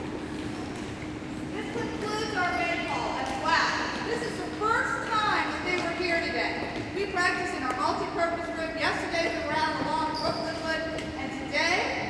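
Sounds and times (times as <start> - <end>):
indistinct talking echoing: 1.4 - 12.0.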